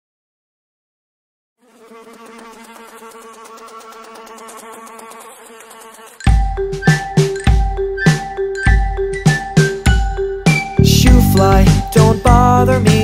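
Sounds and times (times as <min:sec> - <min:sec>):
cartoon fly buzzing: 0:01.6 - 0:10.0
children's song music: 0:06.2 - 0:13.0.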